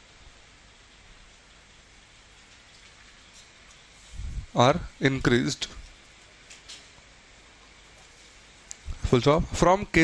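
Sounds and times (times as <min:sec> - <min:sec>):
faint room noise hiss: 0:00.0 - 0:10.0.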